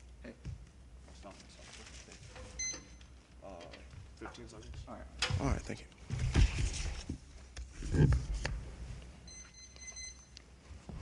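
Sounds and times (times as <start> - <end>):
papers rustling and knocking: 5.4 - 8.6.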